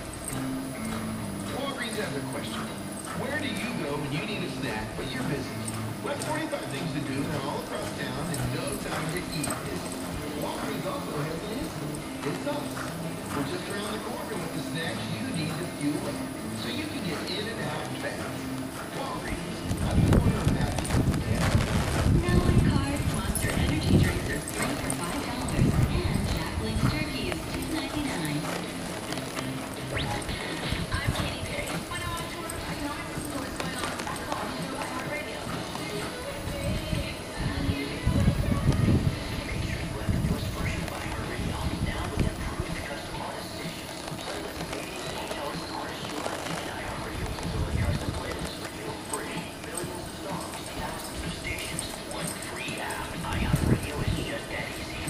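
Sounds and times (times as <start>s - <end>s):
horse hoofbeats on dirt: 0.0s - 55.0s
radio talking quietly: 0.0s - 55.0s.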